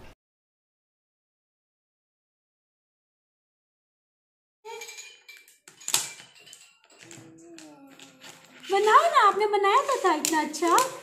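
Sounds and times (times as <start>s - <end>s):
plastic blocks clicking together: 4.8s - 11.0s.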